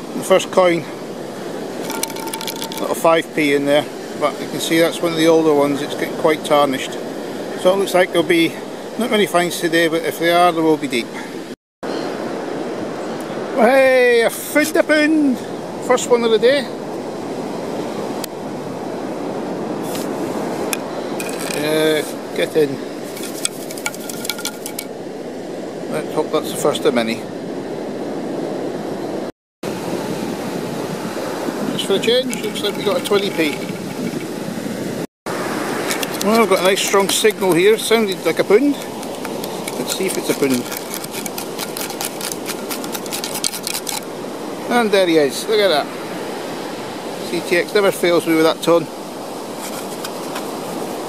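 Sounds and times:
sea surf rushing on beach: 0.0s - 11.5s, 12.1s - 51.0s
sand rattling through a scoop: 1.8s - 3.0s, 21.2s - 22.1s, 23.0s - 24.9s, 31.9s - 34.4s, 35.7s - 44.1s, 49.5s - 50.8s.

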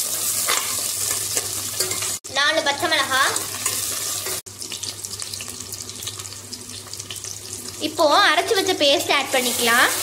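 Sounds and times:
onions sizzling in hot oil: 0.0s - 10.0s.

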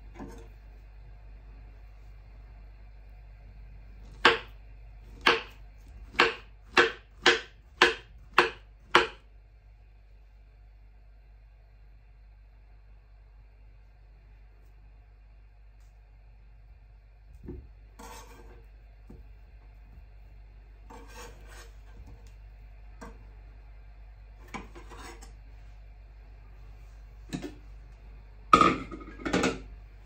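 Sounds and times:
knife scraping wooden cutting board: 18.0s - 18.6s, 20.9s - 22.3s, 24.4s - 25.4s.

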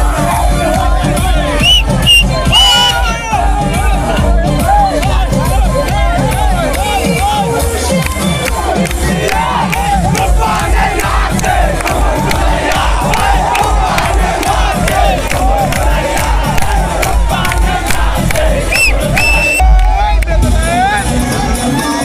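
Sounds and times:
crowd shouting and cheering: 0.0s - 22.0s
live stage music with beat: 0.0s - 22.0s.

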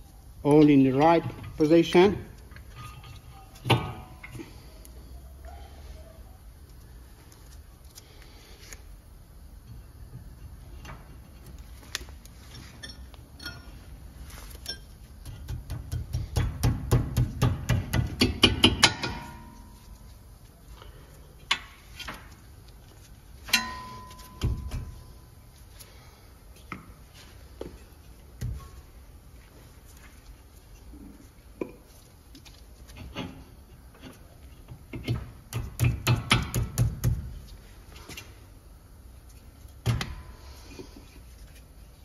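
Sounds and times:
metal tools clinking: 2.5s - 3.5s, 12.4s - 13.9s.

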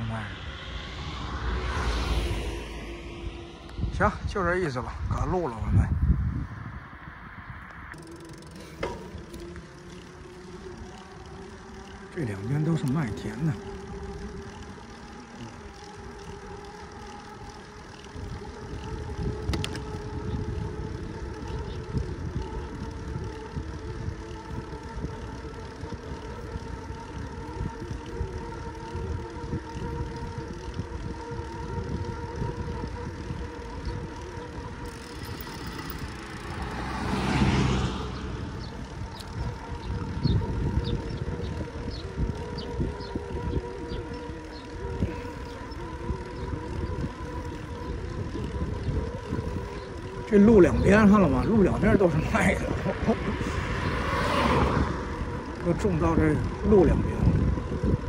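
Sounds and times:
loud rush: 0.0s - 5.2s
steady hum: 0.0s - 58.0s
wind buffeting microphone: 0.0s - 58.0s.

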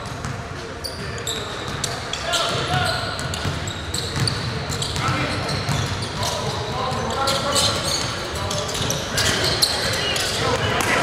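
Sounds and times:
sneaker squeaks: 0.0s - 11.0s
players' voices: 0.2s - 11.0s.

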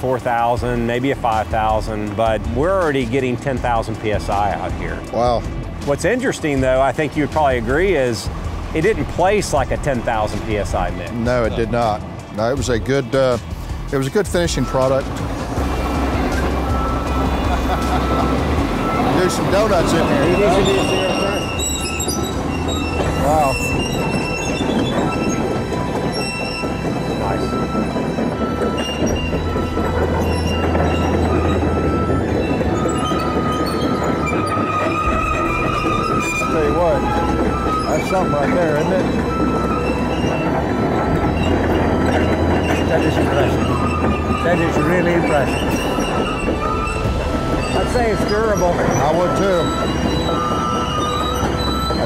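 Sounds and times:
diesel engine running: 0.0s - 52.0s
steel tracks squealing on concrete: 0.0s - 52.0s.

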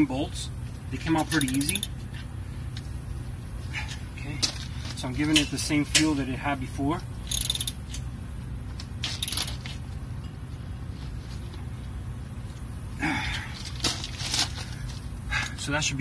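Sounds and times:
steady low hum: 0.0s - 16.0s
socket wrench ratcheting: 1.2s - 2.0s, 7.2s - 8.0s, 9.0s - 9.6s.

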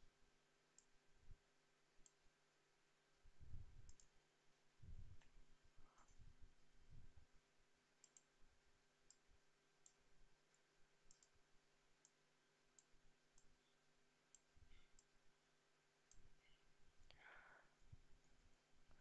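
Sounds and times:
faint computer mouse clicks: 3.8s - 4.2s, 8.0s - 8.3s, 9.8s - 11.4s, 14.3s - 15.1s.

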